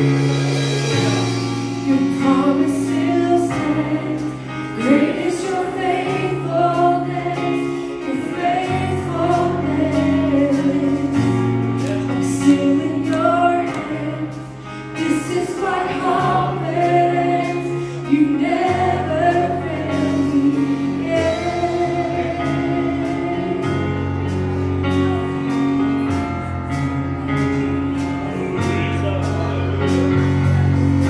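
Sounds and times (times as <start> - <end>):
band accompaniment: 0.0 - 31.0
sustained low bass notes: 0.0 - 31.0
women singing together: 1.9 - 11.4, 12.2 - 14.4, 15.0 - 23.6.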